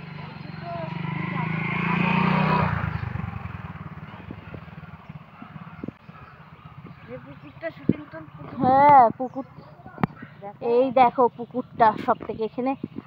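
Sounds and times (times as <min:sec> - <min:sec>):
motorcycle engine passing by: 0:00.0 - 0:12.1.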